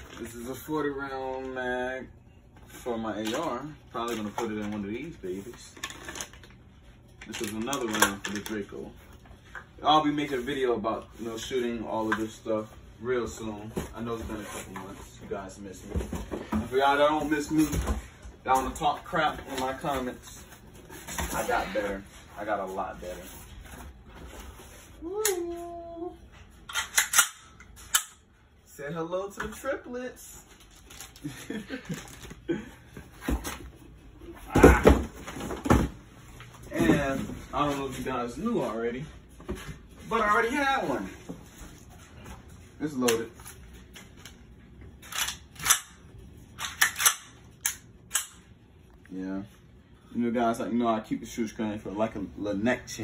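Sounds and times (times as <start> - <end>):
pistol metallic clicks and clacks: 26.7 - 28.2.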